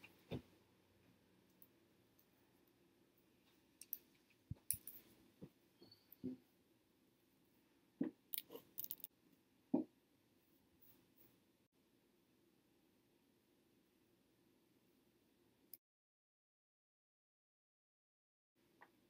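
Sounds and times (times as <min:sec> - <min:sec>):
small items clicking and tapping: 0:03.8 - 0:05.1, 0:08.3 - 0:09.1.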